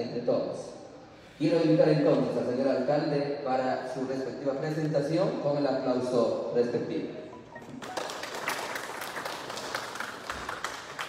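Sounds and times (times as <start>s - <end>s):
audience clapping: 7.5s - 11.0s.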